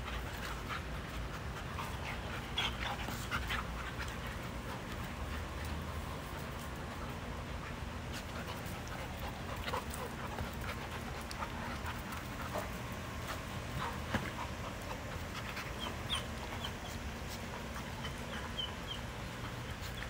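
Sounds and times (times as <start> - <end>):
dog panting: 0.0 - 20.0
dogs scuffling: 0.0 - 20.0.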